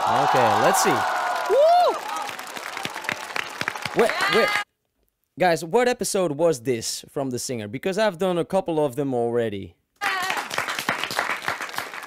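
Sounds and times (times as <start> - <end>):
studio audience applauding: 0.0 - 4.7, 10.0 - 12.0.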